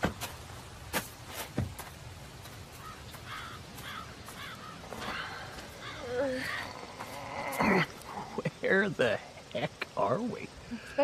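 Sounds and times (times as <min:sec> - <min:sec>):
birds chirping: 0:01.6 - 0:11.0.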